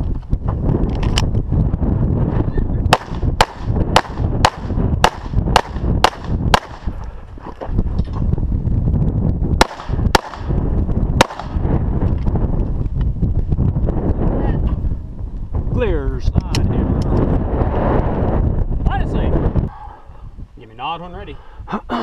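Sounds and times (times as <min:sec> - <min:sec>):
pistol shots: 0:02.9 - 0:06.9, 0:09.6 - 0:10.5, 0:11.2 - 0:11.6.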